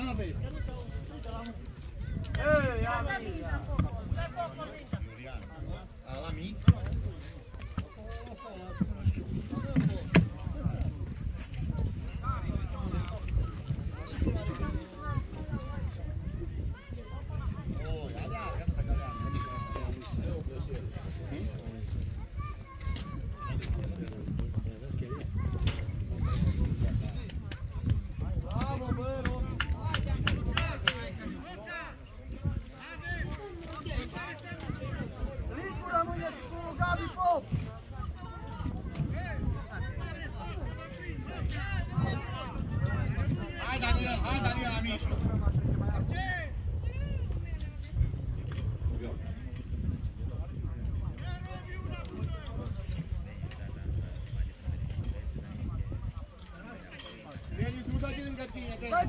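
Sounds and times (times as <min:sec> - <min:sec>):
people talking: 0:00.0 - 0:59.0
wind rumble on microphone: 0:00.0 - 0:59.0.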